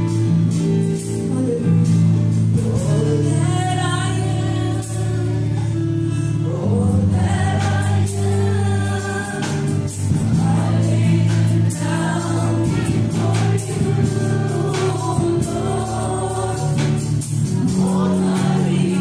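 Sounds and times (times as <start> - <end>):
electric bass guitar: 0.0 - 19.0
woman singing: 1.2 - 19.0.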